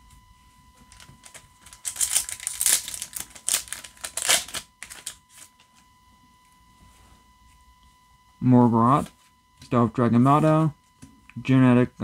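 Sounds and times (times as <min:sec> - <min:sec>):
foil pack crinkling and tearing: 0:00.9 - 0:05.5
cards being handled: 0:00.9 - 0:05.6.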